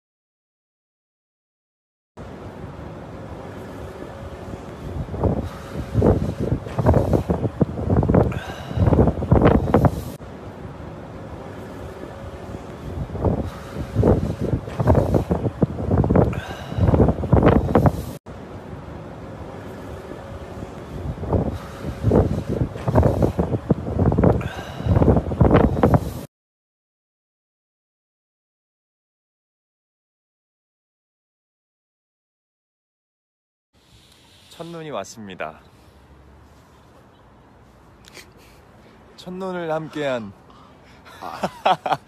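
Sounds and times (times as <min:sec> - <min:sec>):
wind buffeting microphone: 0:03.3 - 0:18.2, 0:19.4 - 0:26.3.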